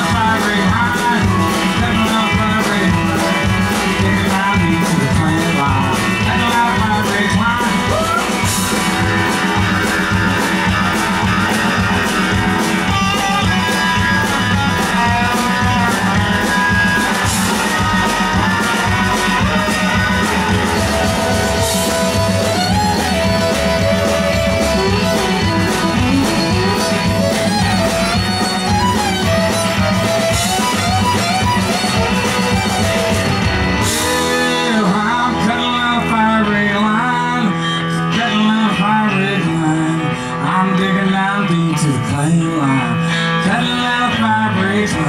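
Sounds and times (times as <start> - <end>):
steady drum beat: 0.0 - 37.4
country-rock band playing: 0.0 - 45.0
lead guitar melody with slides: 0.0 - 45.0
fiddle bowing: 7.9 - 35.8.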